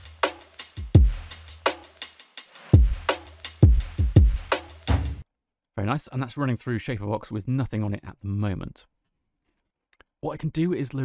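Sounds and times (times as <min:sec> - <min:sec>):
drum loop: 0:00.0 - 0:05.2.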